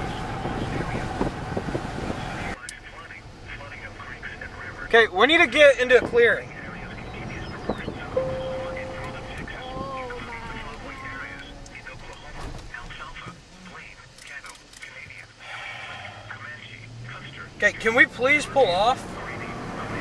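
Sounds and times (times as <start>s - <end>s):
road and engine rumble: 0.0s - 20.0s
brief held tone: 8.2s - 9.6s.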